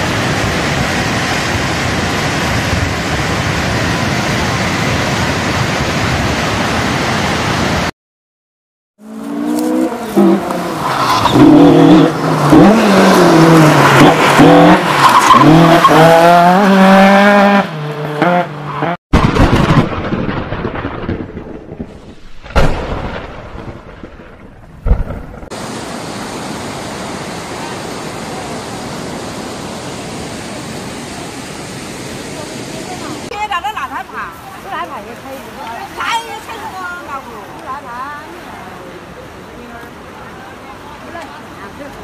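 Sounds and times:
floodwater rushing: 0.0 - 7.9, 9.0 - 17.6, 25.5 - 42.0.

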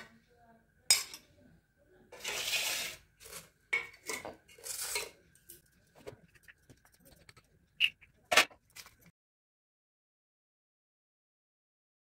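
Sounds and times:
steel plates clinking and scraping: 2.2 - 5.6.

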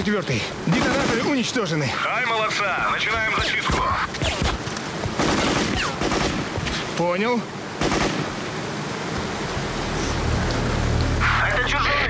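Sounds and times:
automatic weapon fire: 0.7 - 1.4, 5.2 - 6.5, 7.8 - 8.4.

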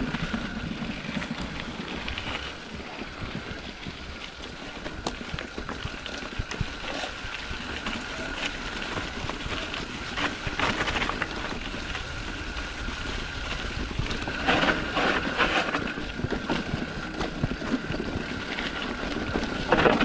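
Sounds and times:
bike rattling over bumps: 0.0 - 20.0
rumble of wind: 0.0 - 20.0.

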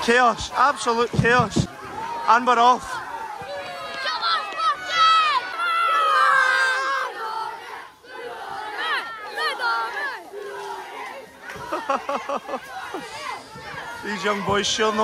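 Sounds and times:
boys shouting and chanting: 0.0 - 15.0.

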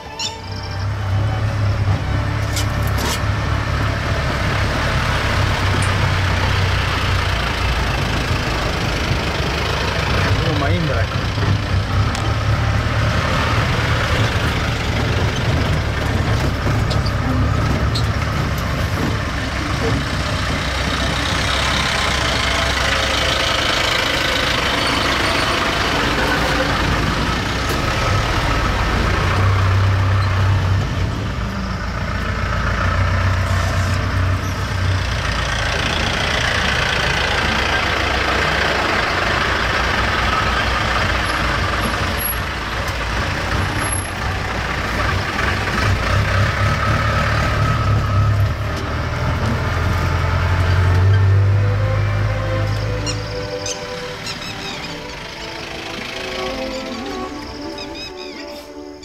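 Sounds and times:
jeep engine running: 0.0 - 59.0
second jeep engine alongside: 0.0 - 59.0.

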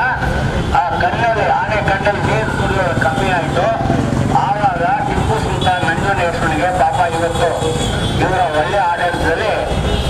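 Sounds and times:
man speaking into a microphone: 0.0 - 9.8.

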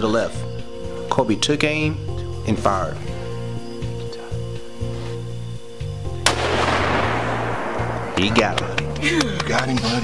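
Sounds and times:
rifle shot with echo: 6.2 - 8.9.

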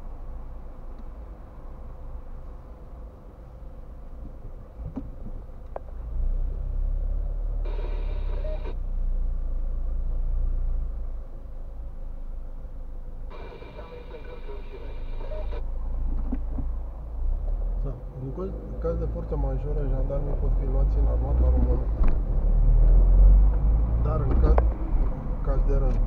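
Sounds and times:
car engine idling: 0.0 - 20.2
short multi-tone sound: 7.7 - 8.8.

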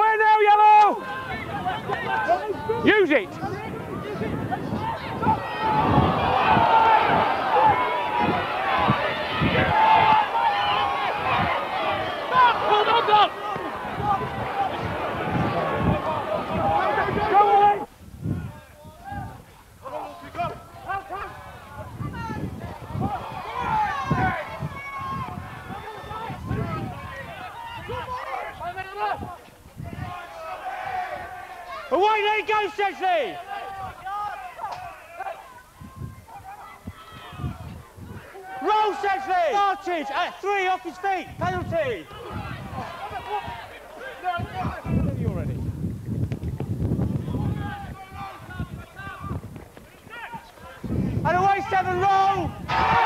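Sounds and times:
crowd shouting and cheering: 0.0 - 45.6, 47.0 - 53.0.

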